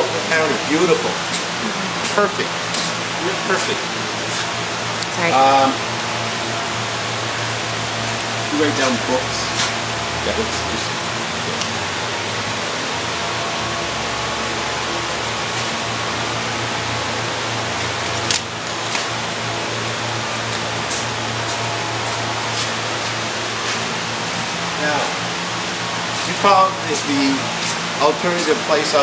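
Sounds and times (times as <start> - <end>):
ventilation fans rushing: 0.0 - 29.0.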